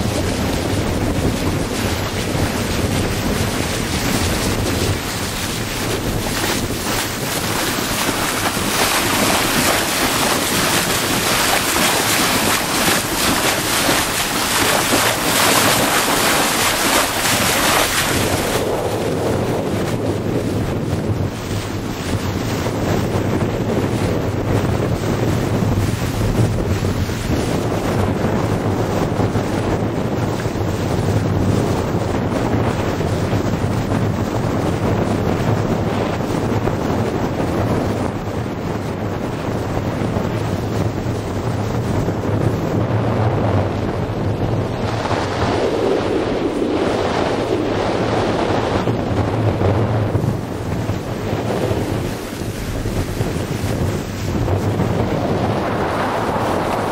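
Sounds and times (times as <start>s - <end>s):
water splashing along boat hull: 0.0s - 56.9s
wind buffeting microphone: 0.0s - 56.9s.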